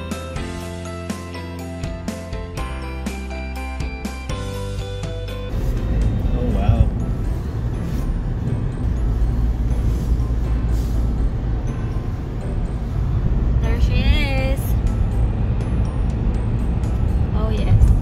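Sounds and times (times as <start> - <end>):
car road and engine rumble: 0.0 - 18.0.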